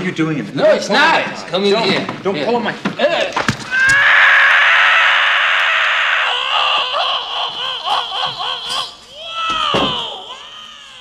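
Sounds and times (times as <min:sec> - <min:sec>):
man screaming: 0:03.7 - 0:11.0.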